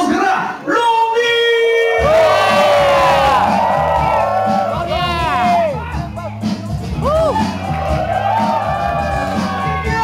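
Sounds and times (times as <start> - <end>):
crowd cheering and shouting: 0.1 - 10.0
shout through microphone: 0.2 - 6.2, 7.0 - 10.0.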